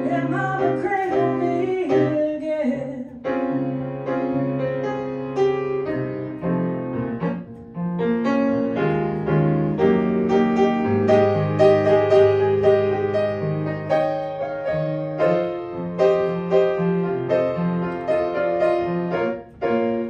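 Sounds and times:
person singing: 0:00.0 - 0:03.3
grand piano playing chords: 0:00.0 - 0:20.0.

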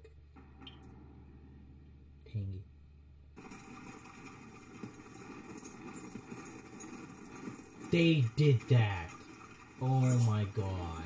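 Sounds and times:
galloping hoofbeats in soundtrack: 0:03.4 - 0:11.0.

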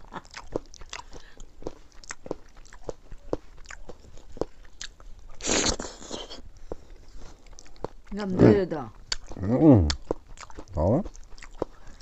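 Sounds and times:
wet chewing mouth sounds: 0:00.0 - 0:12.0.

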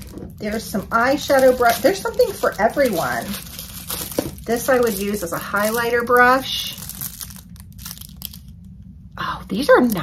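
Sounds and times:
plastic wrapping crinkling: 0:00.0 - 0:08.8, 0:09.6 - 0:10.0.

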